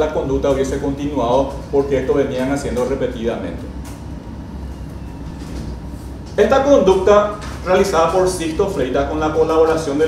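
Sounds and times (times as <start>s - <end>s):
low room hum and rumble: 0.0s - 10.0s.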